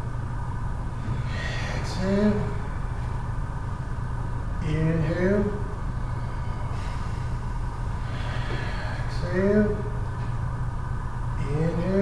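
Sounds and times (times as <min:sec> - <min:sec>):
low mechanical room hum: 0:00.0 - 0:12.0.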